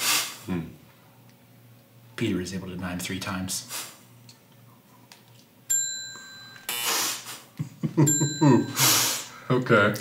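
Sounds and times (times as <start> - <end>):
bright bell dings: 5.7 - 6.7, 8.0 - 9.2.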